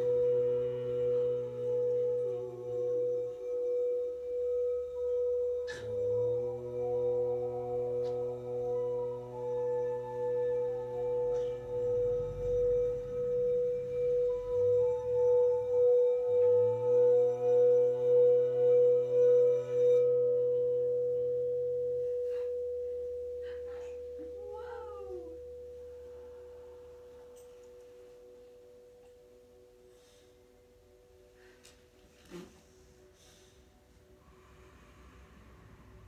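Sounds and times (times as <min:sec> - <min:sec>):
singing bowl ringing tone: 0:00.0 - 0:36.0.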